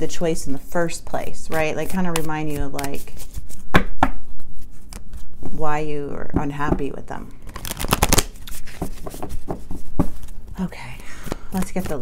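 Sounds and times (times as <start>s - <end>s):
cards being shuffled: 1.4s - 5.6s, 7.4s - 12.0s.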